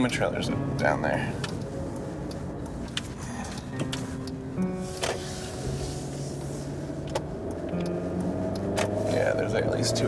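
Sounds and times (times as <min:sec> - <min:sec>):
road and engine noise in car: 0:00.0 - 0:10.0
soft held musical notes: 0:00.0 - 0:10.0.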